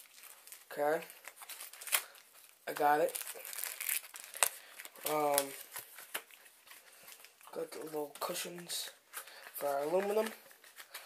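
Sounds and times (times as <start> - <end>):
packaging crinkling and rustling: 0.0 - 11.0.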